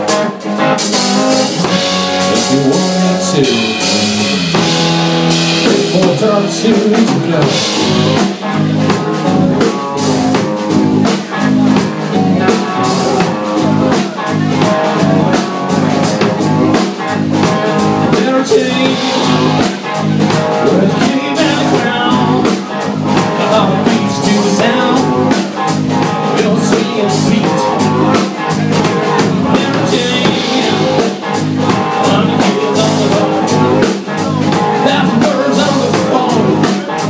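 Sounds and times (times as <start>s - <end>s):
rock band playing live: 0.0s - 37.0s
steady drum beat: 0.0s - 37.0s.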